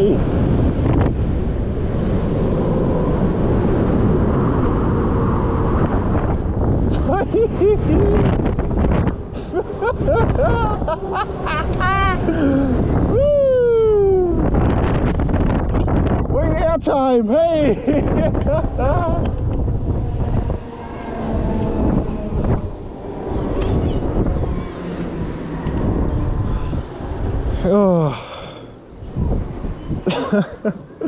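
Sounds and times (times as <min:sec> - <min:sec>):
wind rushing over microphone: 0:00.0 - 0:31.0
people yelling and whooping: 0:09.5 - 0:14.5.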